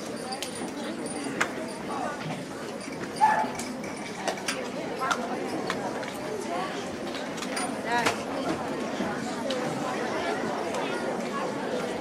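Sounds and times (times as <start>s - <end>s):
audience murmuring: 0.0s - 12.0s.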